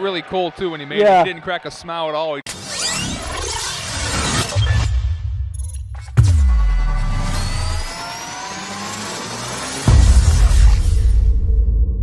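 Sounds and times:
deep hit: 6.1 - 7.9
rising sweep: 6.4 - 11.3.

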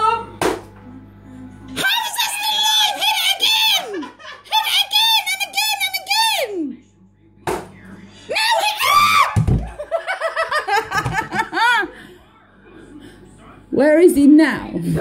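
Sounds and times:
women screaming: 8.3 - 9.5.

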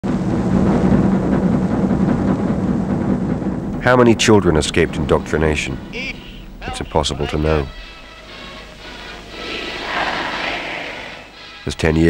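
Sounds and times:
snare drum roll: 0.0 - 11.4.

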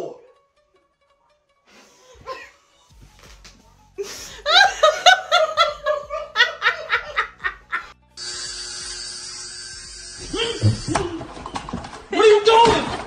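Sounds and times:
high-pitched laughter: 4.1 - 7.9
electric hair clippers buzzing: 8.2 - 11.3.

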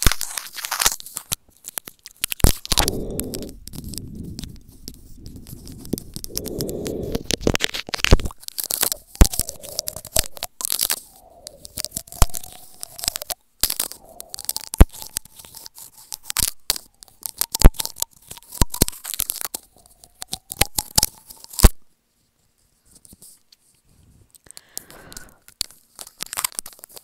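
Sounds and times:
teeth biting on microphone: 0.0 - 21.8.

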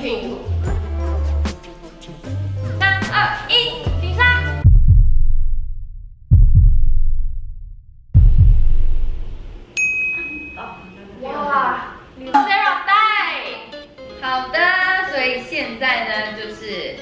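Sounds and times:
deep booming hits: 4.6 - 9.6
high ding: 9.8 - 11.0.

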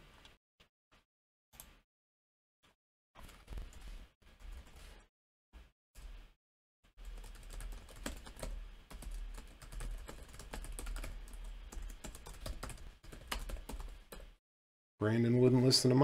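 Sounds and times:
keyboard typing: 7.0 - 14.3.

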